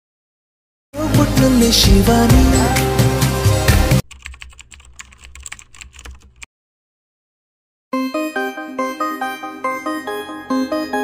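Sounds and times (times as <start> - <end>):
pop song: 1.0 - 4.0
keyboard typing clicks: 4.0 - 6.5.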